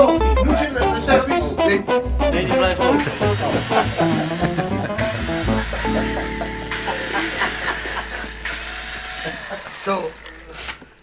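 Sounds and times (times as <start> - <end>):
cordless drill motor whine: 5.0 - 10.9.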